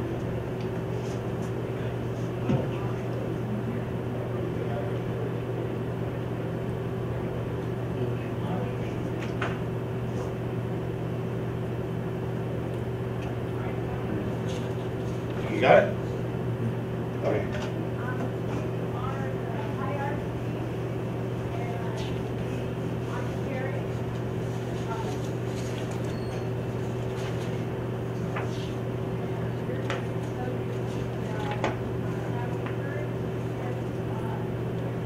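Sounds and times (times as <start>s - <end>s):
steady low hum: 0.0s - 35.0s
voices murmuring: 12.5s - 35.0s.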